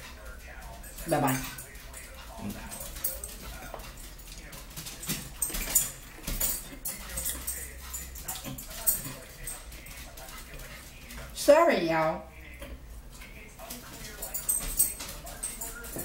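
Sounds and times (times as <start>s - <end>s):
forks clinking on plates: 0.0s - 11.4s, 13.2s - 16.0s.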